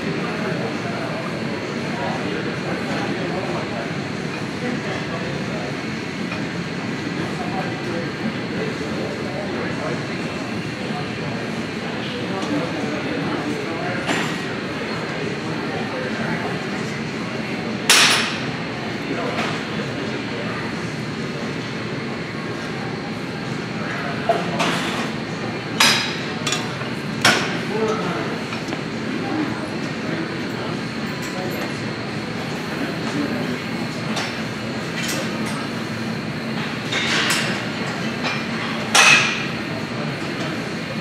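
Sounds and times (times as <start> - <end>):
gym background noise: 0.0 - 41.0.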